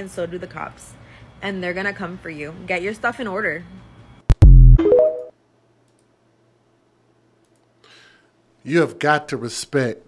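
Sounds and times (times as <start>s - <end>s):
rising electronic notes: 4.3s - 5.3s.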